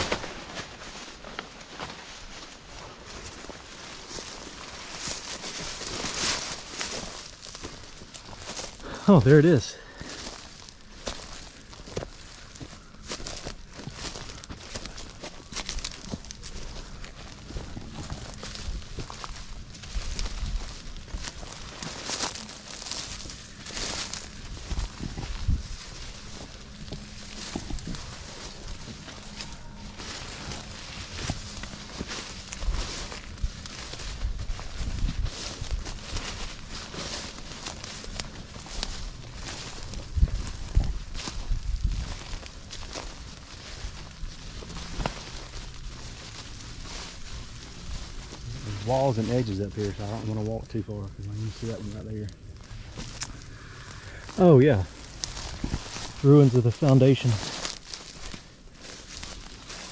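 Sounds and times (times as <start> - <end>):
rustling of vines and leaves: 0.0 - 59.9.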